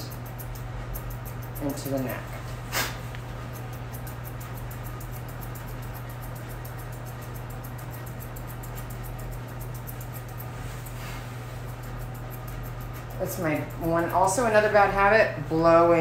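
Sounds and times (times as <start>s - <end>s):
grooming shears snipping: 0.0s - 14.8s
steady low hum: 0.0s - 16.0s.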